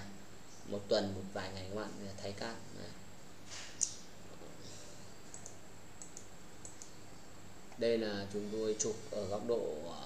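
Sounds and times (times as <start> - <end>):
steady low hum and hiss: 0.0 - 10.0
computer mouse clicks: 5.2 - 7.0.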